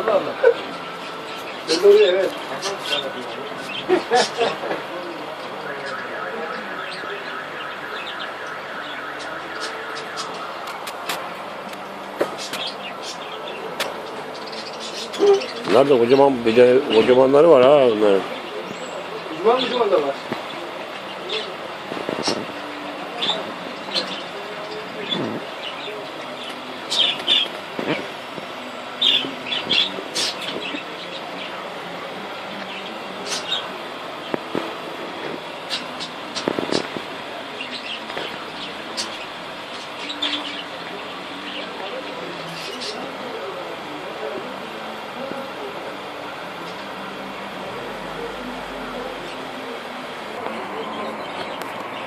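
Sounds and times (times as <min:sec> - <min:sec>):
birds chirping: 0:00.0 - 0:52.0.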